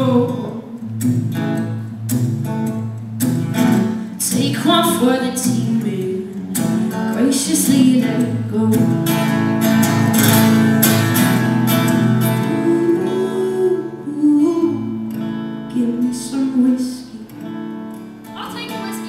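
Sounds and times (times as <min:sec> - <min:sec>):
woman singing: 0:00.0 - 0:00.8, 0:04.1 - 0:09.0, 0:12.4 - 0:17.4, 0:18.3 - 0:19.0
acoustic guitar strummed: 0:00.0 - 0:19.0.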